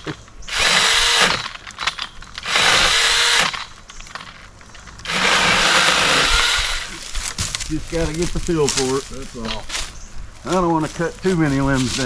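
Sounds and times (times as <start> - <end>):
chainsaw cutting tree limb: 0.0 - 4.4, 5.0 - 7.7.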